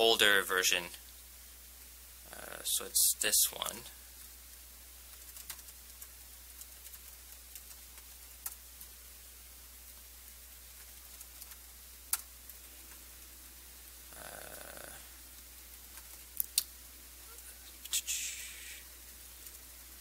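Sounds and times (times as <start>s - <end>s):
low room hum: 0.0s - 20.0s
laptop keyboard keystrokes: 5.1s - 8.9s, 10.8s - 12.3s.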